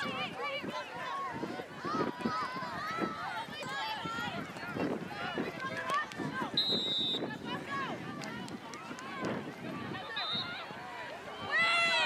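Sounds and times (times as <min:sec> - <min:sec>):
crowd of voices calling out: 0:00.0 - 0:12.0.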